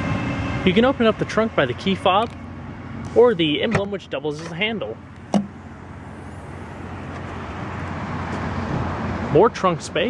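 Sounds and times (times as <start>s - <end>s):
distant traffic rushing: 0.0s - 10.0s.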